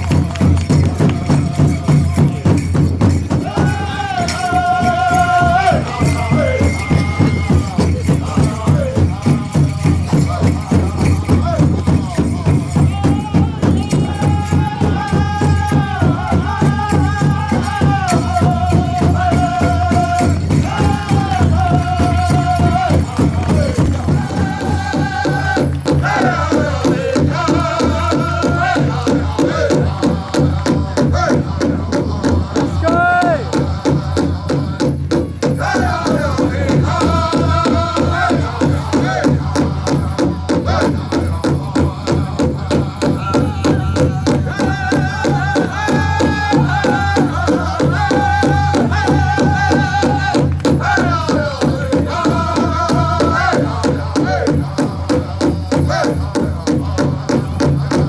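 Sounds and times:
large drum steady beat: 0.0s - 58.0s
singers chanting: 0.0s - 58.0s.

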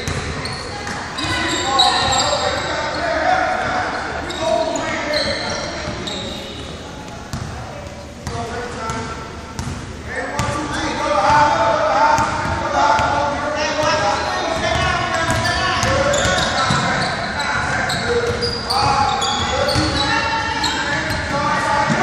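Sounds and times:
voices calling out: 0.0s - 8.2s.

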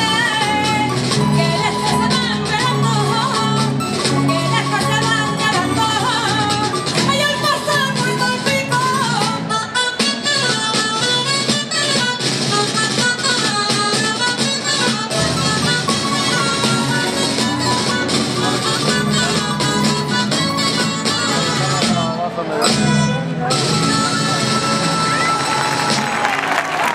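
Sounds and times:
plucked strings melody: 0.0s - 25.2s.

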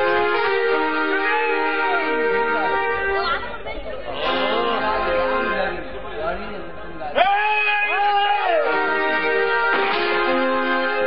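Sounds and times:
background music: 0.0s - 6.0s, 7.2s - 11.0s
several voices talking: 0.0s - 11.0s.

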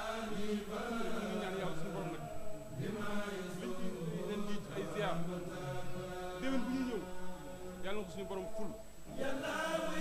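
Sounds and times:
men chanting: 0.0s - 10.0s.

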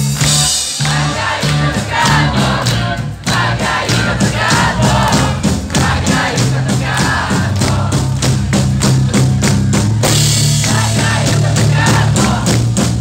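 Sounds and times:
live rock band playing: 0.0s - 13.0s
steady drum beat: 0.0s - 13.0s
voices singing: 0.2s - 8.2s, 10.5s - 12.8s.

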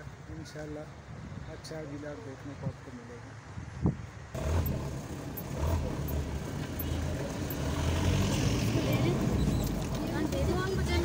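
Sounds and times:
car engine low rumble: 4.4s - 11.0s.

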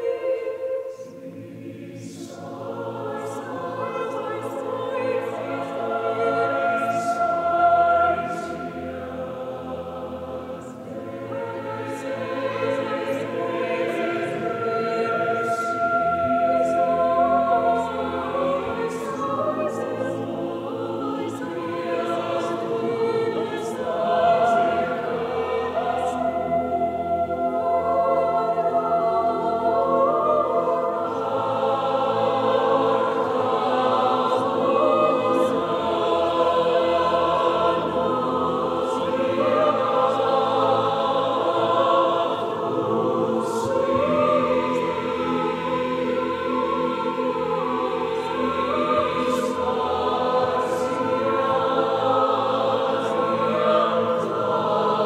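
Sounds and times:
mixed choir singing: 0.0s - 55.0s.

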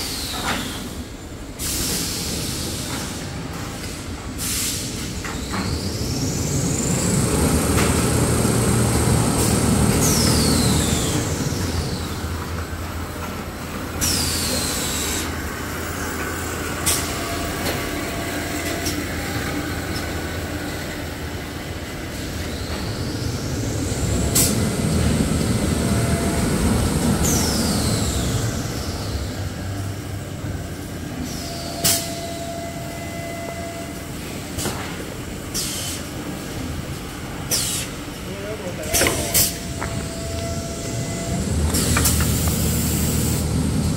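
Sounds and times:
high machine whine: 5.5s - 34.6s, 38.3s - 43.9s.

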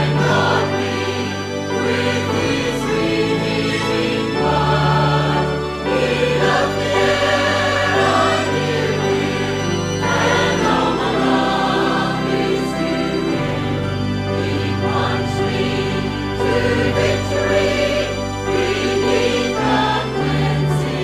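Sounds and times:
choir singing a hymn: 0.0s - 21.0s
low instrumental accompaniment: 0.0s - 21.0s.

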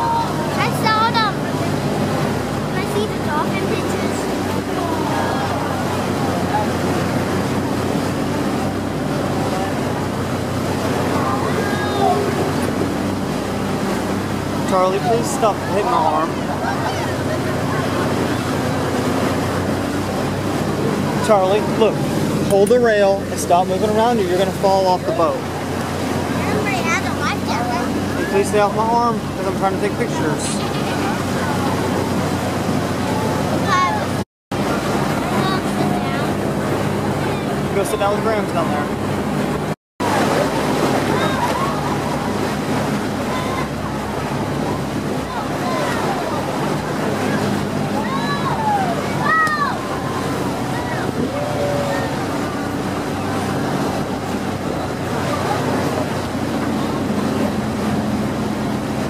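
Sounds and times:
boat engine running: 0.0s - 59.0s
churning wake water: 0.0s - 59.0s
wind on microphone: 38.6s - 59.0s
people calling out: 43.1s - 53.8s.

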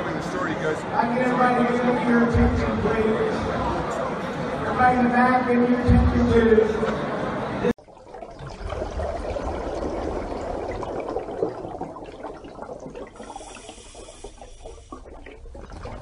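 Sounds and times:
running water: 7.8s - 16.0s.

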